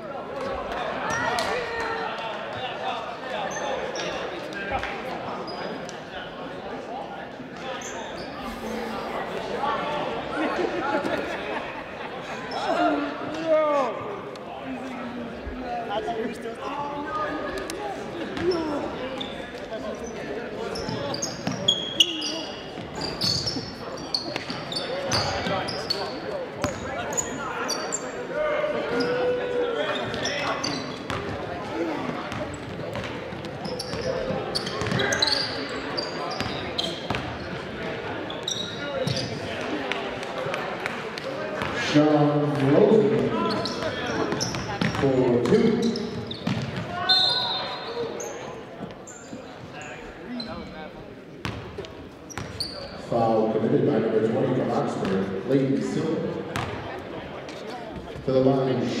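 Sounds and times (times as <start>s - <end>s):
voices echoing in a hall: 0.0s - 59.0s
sneaker squeaks: 5.4s - 5.8s, 7.6s - 8.9s, 18.3s - 28.3s, 28.9s - 39.5s, 43.3s - 45.1s, 45.7s - 50.8s, 51.4s - 53.1s.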